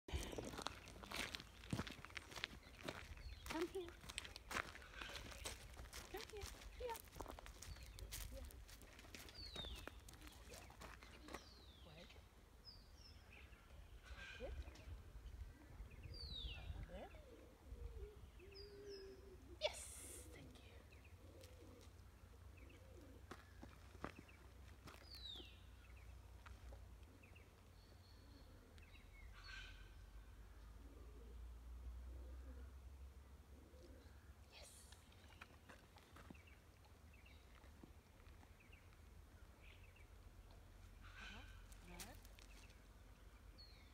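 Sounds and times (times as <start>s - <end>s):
birds calling: 0.1s - 26.2s, 27.1s - 31.3s, 40.9s - 43.9s.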